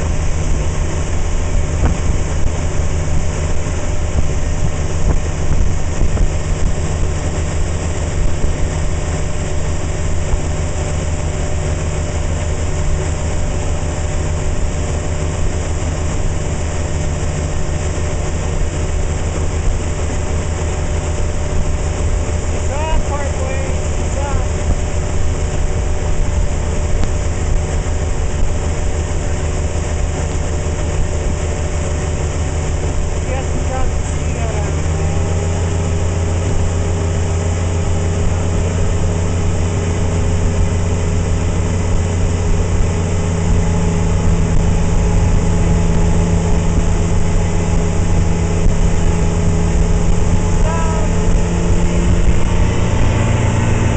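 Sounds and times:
boat engine running: 0.0 - 53.9
churning wake water: 0.0 - 53.9
wind: 0.0 - 53.9.

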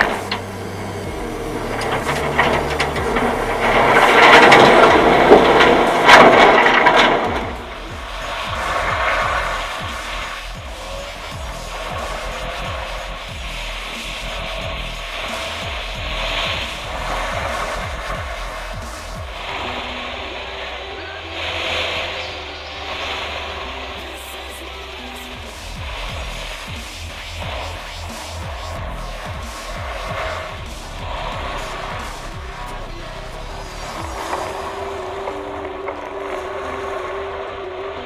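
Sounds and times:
car low rumble: 0.0 - 38.0
tyres hissing over gravel: 0.0 - 38.0
wind and road noise: 0.0 - 38.0.

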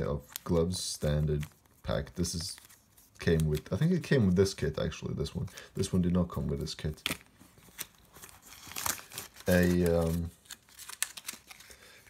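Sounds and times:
plastic packaging crinkling: 5.8 - 12.0.

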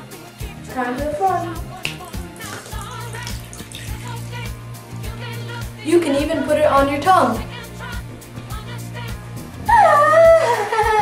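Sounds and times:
background music with steady beat: 0.0 - 11.0
water pouring into sink: 1.9 - 4.3.

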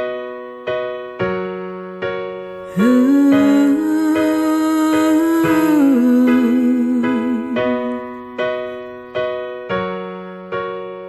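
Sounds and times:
electric piano chords: 0.0 - 11.0.

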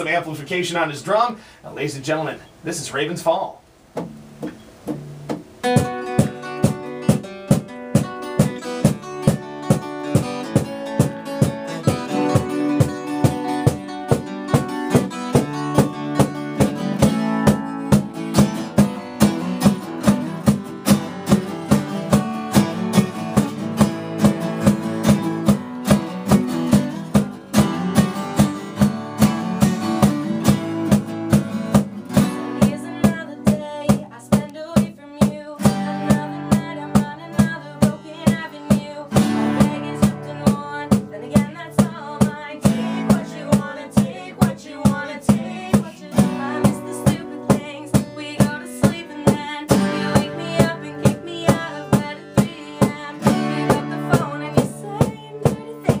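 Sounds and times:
acoustic guitars strumming: 0.0 - 56.0
steady drum beat: 3.9 - 56.0.

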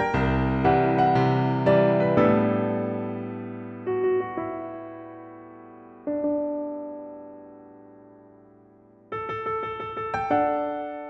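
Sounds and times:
piano chord: 0.0 - 11.0.

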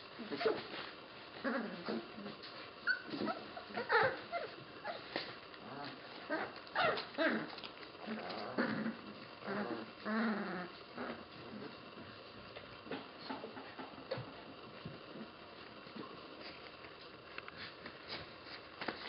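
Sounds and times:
puppies vocalizing: 1.4 - 11.6.

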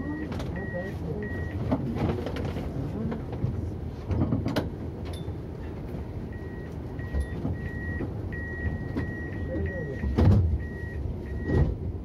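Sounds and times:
tram rumbling: 0.0 - 12.0
high door warning beeps: 0.1 - 1.6, 6.3 - 11.7.

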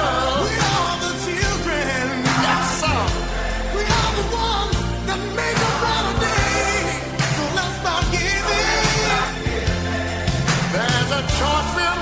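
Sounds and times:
bass and drums slow beat: 0.0 - 11.9
person singing pop ballad: 0.0 - 12.0.

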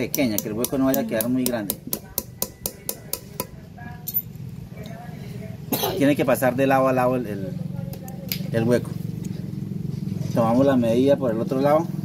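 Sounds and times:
hatchet tapping nail through metal: 0.0 - 4.2.

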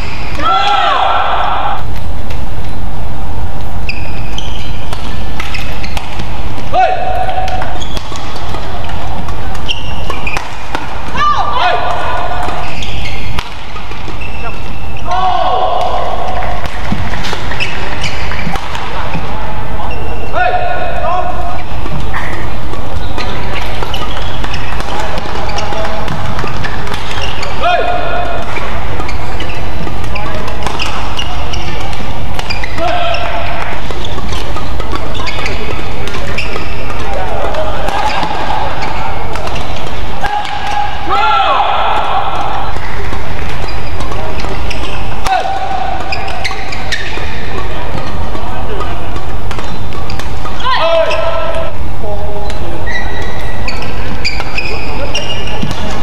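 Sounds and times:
court shoes squealing: 0.0 - 2.9, 3.6 - 56.0
racket striking shuttlecock: 3.6 - 14.8, 15.7 - 19.3, 21.4 - 41.0, 41.9 - 51.8, 52.4 - 56.0.

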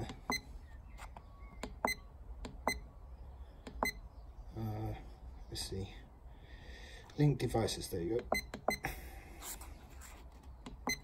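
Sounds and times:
keypad beeps: 0.2 - 0.5, 1.4 - 2.9, 3.7 - 4.0, 8.2 - 8.8, 10.7 - 11.0.

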